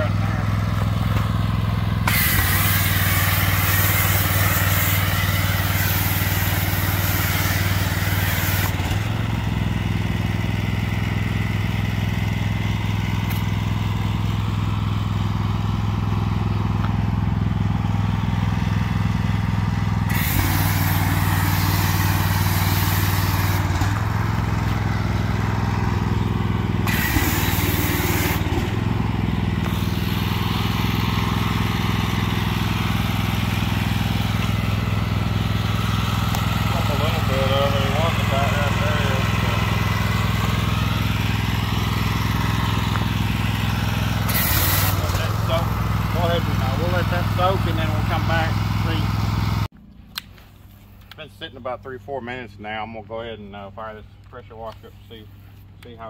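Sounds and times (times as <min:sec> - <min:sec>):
pressure washer engine running: 0:00.0 - 0:49.7
foam cannon spray hissing: 0:02.0 - 0:09.1, 0:20.0 - 0:26.0, 0:26.8 - 0:49.5.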